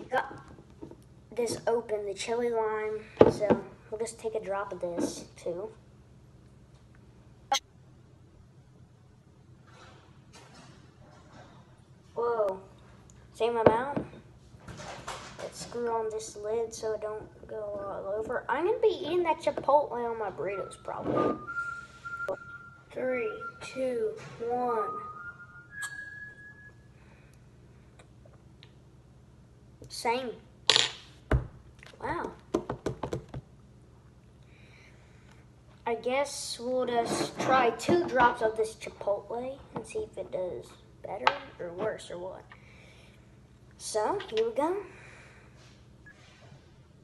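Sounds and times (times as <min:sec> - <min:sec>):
high whistle-like tone: 0:20.6 - 0:27.0.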